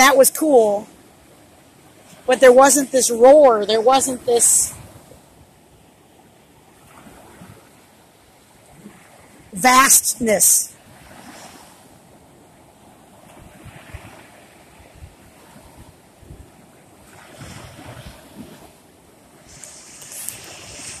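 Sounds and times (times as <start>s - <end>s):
waves breaking on beach: 0.0s - 21.0s
wind buffeting microphone: 0.6s - 9.6s, 10.9s - 21.0s.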